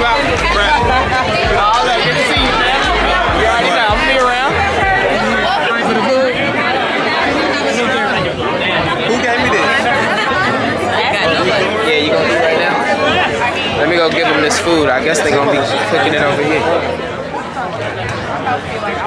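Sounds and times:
low bass beat: 0.0s - 5.6s
loud music playing: 0.0s - 5.7s
crowd chatter: 0.0s - 19.0s.

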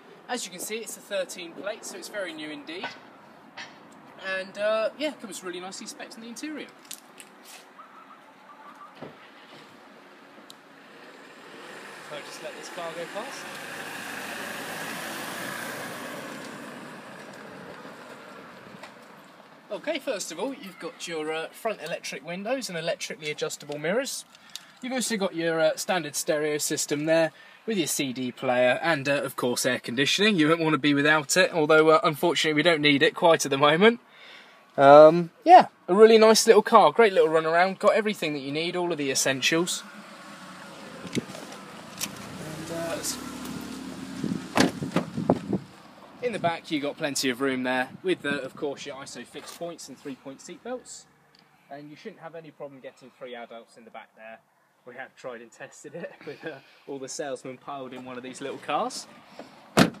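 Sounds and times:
car passing on wet road: 10.8s - 19.1s, 39.7s - 45.1s
car door shutting thud: 44.4s - 45.6s, 59.4s - 60.0s.

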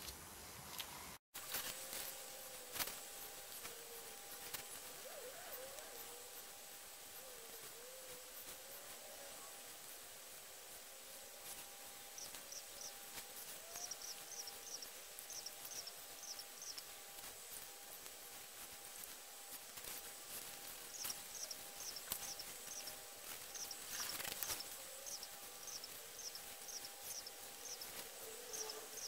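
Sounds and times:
thin steady hum: 0.0s - 29.0s.

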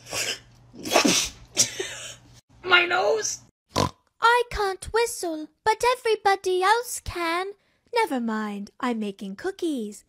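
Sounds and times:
woman laughing: 0.8s - 2.2s.

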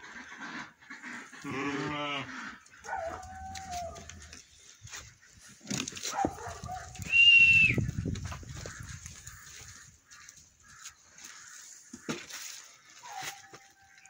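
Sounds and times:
animals rustling and shuffling: 0.0s - 14.0s
sheep bleating: 1.4s - 2.4s
high whistle-like call: 7.0s - 7.8s.

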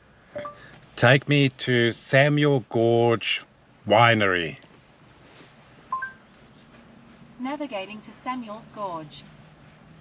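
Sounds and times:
faint car cabin noise: 0.0s - 10.0s
two-note rising beep: 0.4s - 0.6s, 5.9s - 6.2s.

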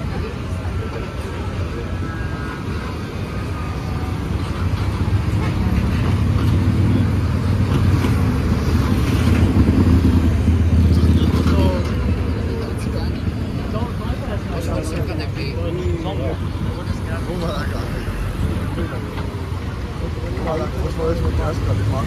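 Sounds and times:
cars driving past: 0.0s - 22.0s.

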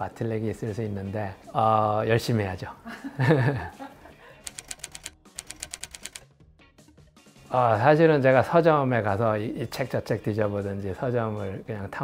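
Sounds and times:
man laughing: 2.9s - 4.2s
keyboard typing clicks: 4.5s - 6.2s.

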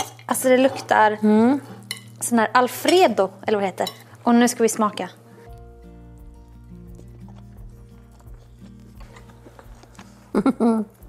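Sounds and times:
soft background music: 0.0s - 11.0s
forks clinking on plates: 1.6s - 3.1s.

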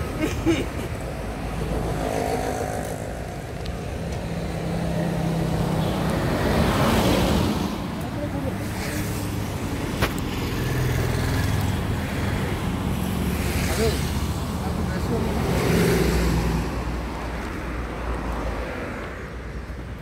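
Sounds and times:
vehicles passing by: 0.0s - 20.0s
people talking: 13.6s - 15.7s.

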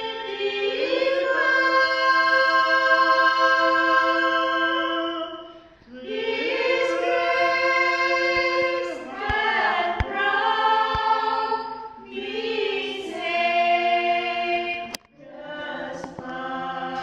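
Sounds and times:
women singing a carol: 0.0s - 17.0s.

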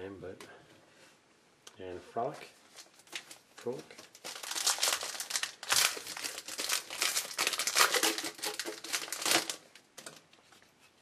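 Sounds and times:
foil packs and cards crinkling: 2.7s - 10.2s.

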